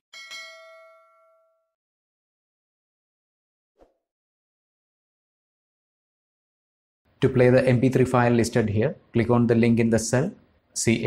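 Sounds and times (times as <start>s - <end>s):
bell-like ding: 0.1s - 1.8s.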